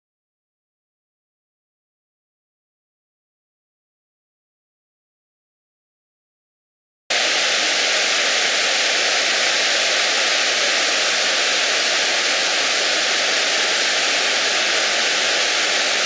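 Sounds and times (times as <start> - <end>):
rush of churning whitewater: 7.1 - 16.0.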